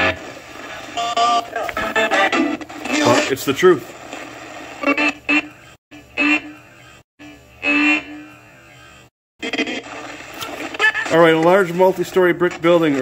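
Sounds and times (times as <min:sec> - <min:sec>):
choppy radio fragments: 0:00.0 - 0:05.4, 0:09.4 - 0:13.0.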